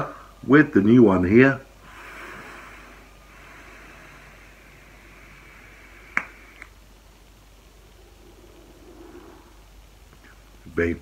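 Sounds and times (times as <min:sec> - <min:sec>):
vapour breathed out: 0:01.8 - 0:06.7
airy hiss of vape draw: 0:01.8 - 0:07.1.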